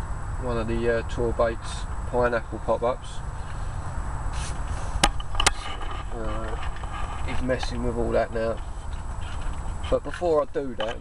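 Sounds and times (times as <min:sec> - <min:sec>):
camera handling rumble: 0:04.4 - 0:11.0.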